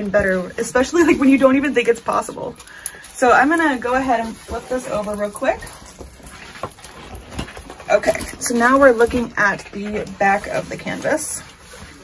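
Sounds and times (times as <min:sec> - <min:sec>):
canvas handling and rustling: 0:03.2 - 0:12.0.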